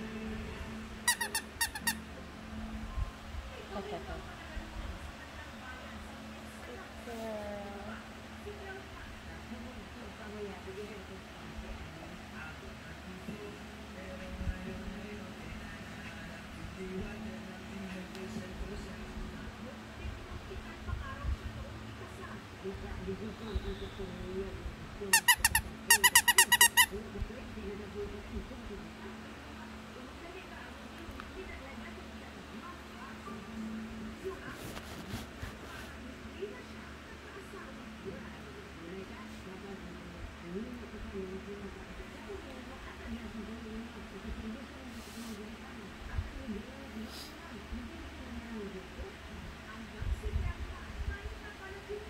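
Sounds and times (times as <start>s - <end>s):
squeaky dog toy squeaking: 1.0s - 2.0s, 25.1s - 26.9s.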